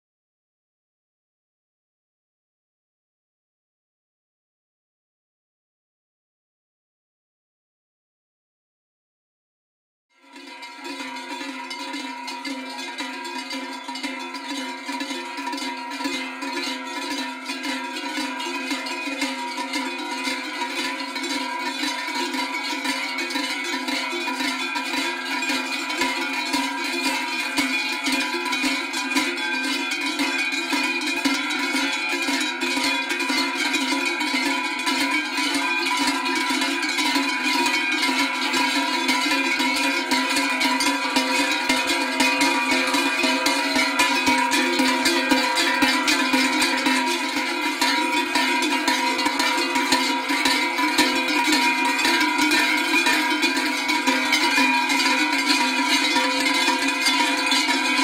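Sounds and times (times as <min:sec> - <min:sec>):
cowbells clanging: 0:10.2 - 0:58.0.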